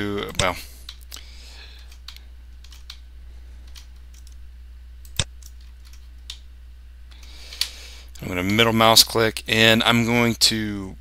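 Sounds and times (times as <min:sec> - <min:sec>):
steady low hum: 0:00.0 - 0:11.0
computer mouse clicks: 0:01.9 - 0:03.0, 0:03.6 - 0:04.4, 0:05.0 - 0:06.4.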